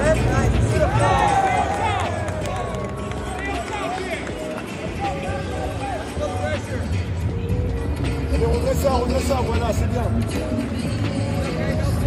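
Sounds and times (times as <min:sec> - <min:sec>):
music playing: 0:00.0 - 0:12.0
indistinct shouting voices: 0:00.6 - 0:06.4.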